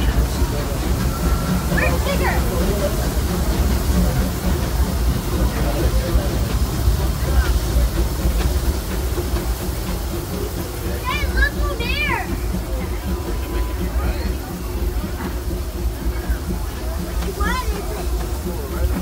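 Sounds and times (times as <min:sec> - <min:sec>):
people's voices: 0:00.0 - 0:19.0
steam train rolling on track: 0:00.0 - 0:19.0.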